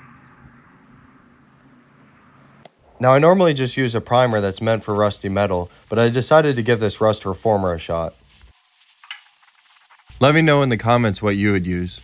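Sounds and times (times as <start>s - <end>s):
background hiss: 2.7s - 12.0s.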